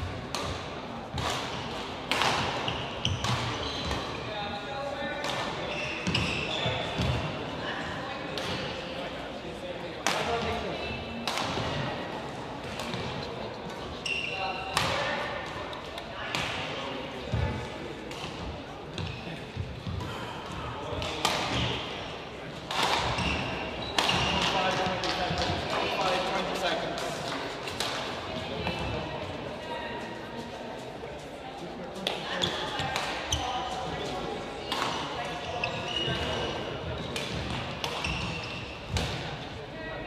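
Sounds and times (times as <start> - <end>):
voices chattering: 2.0 - 40.0.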